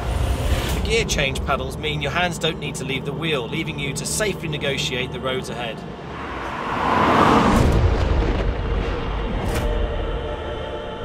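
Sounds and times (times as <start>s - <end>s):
rushing whoosh sweeping down: 5.9s - 9.7s
deep low rumbling boom: 7.3s - 10.0s.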